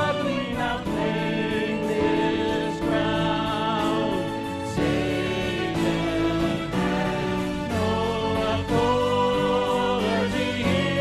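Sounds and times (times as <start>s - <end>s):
choir singing in harmony: 0.0s - 11.0s
instrumental accompaniment: 0.0s - 11.0s.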